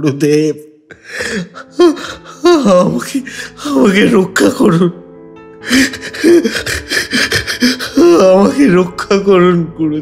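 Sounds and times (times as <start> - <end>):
man wailing in pain: 5.7 - 8.7.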